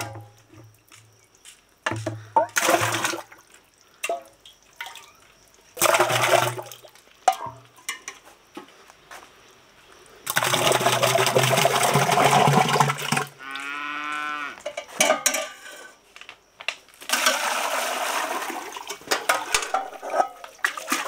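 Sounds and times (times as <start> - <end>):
milk pouring and splashing: 2.0 - 7.6, 10.3 - 13.4, 17.1 - 21.0
cow mooing: 13.4 - 14.6.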